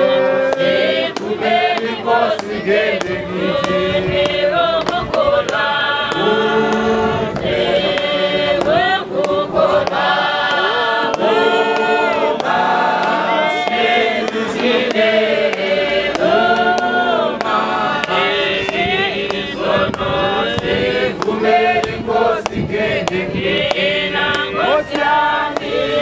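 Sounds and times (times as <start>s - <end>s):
congregation singing a hymn: 0.0s - 26.0s.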